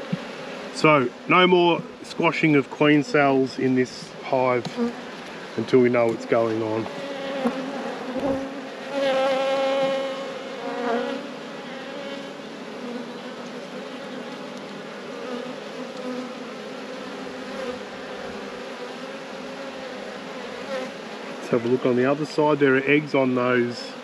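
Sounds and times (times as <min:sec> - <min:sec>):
honeybees buzzing: 0:00.0 - 0:24.0.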